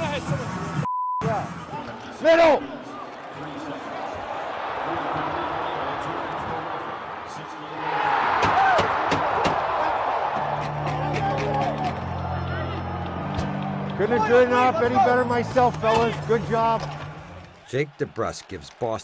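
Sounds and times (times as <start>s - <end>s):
arena crowd noise: 0.0s - 19.0s
hockey sticks and puck clacking: 10.6s - 12.0s.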